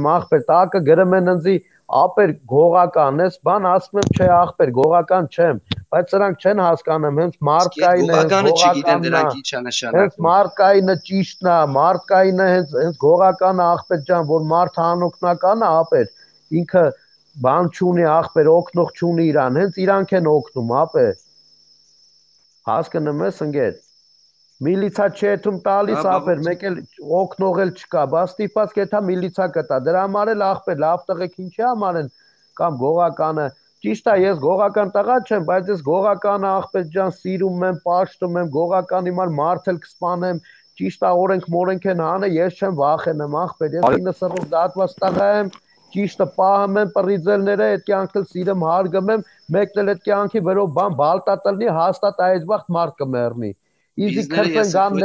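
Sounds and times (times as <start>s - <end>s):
man speaking: 0.0s - 21.2s, 22.7s - 23.8s, 24.6s - 55.0s
man talking fast: 0.0s - 21.2s, 22.7s - 23.8s, 24.6s - 55.0s
steady high-pitched tone: 7.6s - 10.1s, 25.8s - 26.8s, 54.0s - 55.0s.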